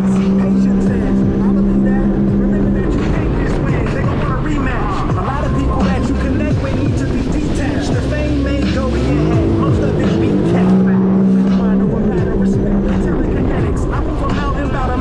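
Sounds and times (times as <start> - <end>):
rushing water and spray: 0.0 - 12.6
personal watercraft engine revving: 0.0 - 15.0.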